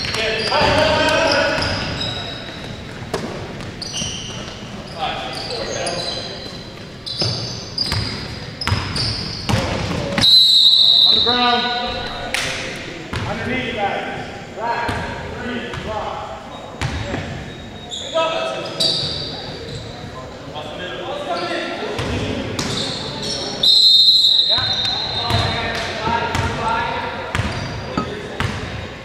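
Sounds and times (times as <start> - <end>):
referee's whistle blast: 10.2 - 11.9, 23.6 - 25.6.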